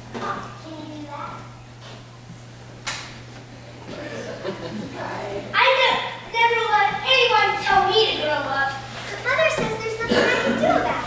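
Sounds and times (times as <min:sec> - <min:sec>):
children speaking: 0:00.2 - 0:01.6, 0:03.9 - 0:11.0.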